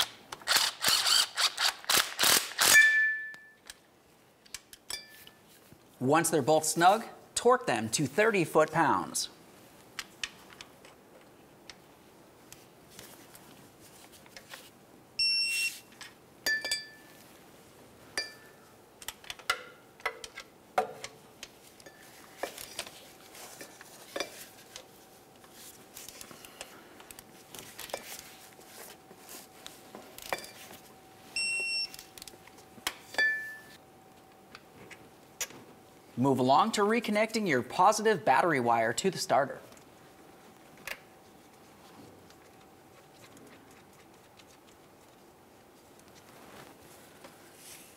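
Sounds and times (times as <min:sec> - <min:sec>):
torque wrench ratcheting: 0:00.4 - 0:02.8
short electronic beeps: 0:15.2 - 0:15.8, 0:31.4 - 0:32.0.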